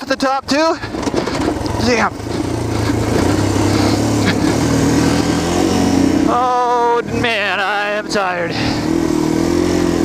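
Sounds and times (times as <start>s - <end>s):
motorcycle engine running: 0.0s - 10.0s.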